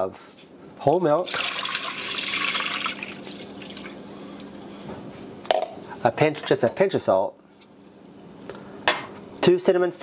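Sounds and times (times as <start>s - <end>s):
milk pouring into a saucepan: 1.2s - 4.0s.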